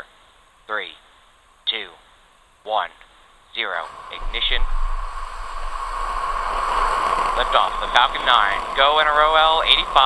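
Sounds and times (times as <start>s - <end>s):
rocket engines rumbling: 3.6s - 10.0s.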